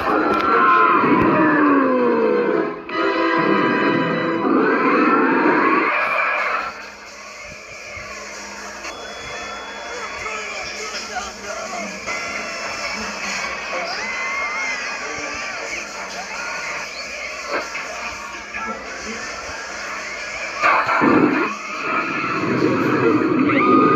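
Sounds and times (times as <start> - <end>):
music with voices: 0.0 - 23.9.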